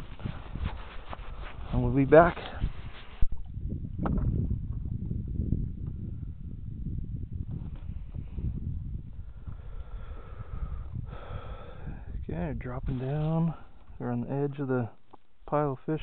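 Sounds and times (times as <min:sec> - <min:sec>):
wind buffeting microphone: 0:00.0 - 0:14.5.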